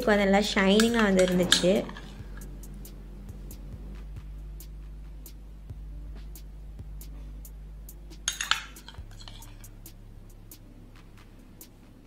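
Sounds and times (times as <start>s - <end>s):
woman's voice: 0.0s - 2.1s
spoon clinking against glass bowl: 8.3s - 9.5s.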